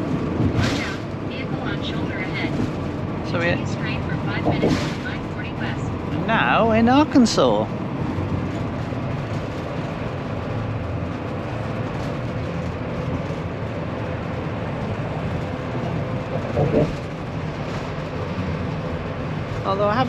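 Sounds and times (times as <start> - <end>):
road and engine noise: 0.0 - 20.0.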